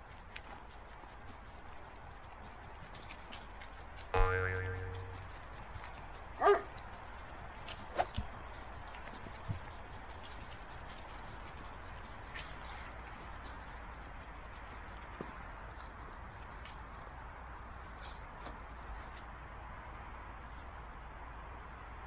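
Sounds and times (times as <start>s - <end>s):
ringing boing-like tone: 4.2s - 5.3s
dog bark: 6.4s - 6.7s.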